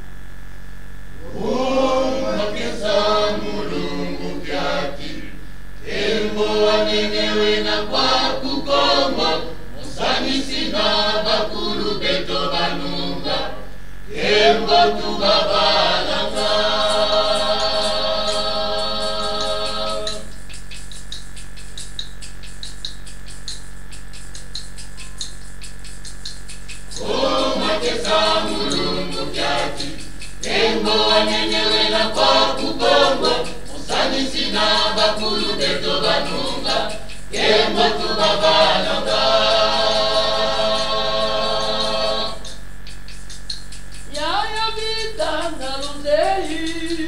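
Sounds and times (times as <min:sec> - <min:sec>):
low hum: 0:00.0 - 0:47.0
choir singing a chord: 0:01.2 - 0:20.3, 0:26.9 - 0:42.5
hand percussion beat: 0:05.9 - 0:13.5, 0:14.1 - 0:47.0.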